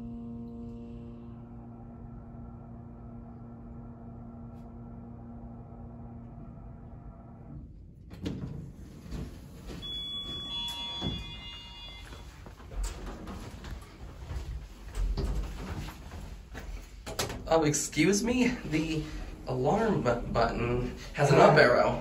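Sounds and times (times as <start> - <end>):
elevator doors sliding: 1.4 - 22.0
brief ringing tone: 9.8 - 12.5.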